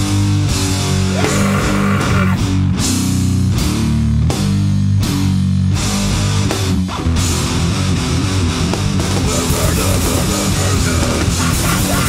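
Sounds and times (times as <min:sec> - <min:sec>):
distorted electric guitar and bass: 0:00.0 - 0:12.0.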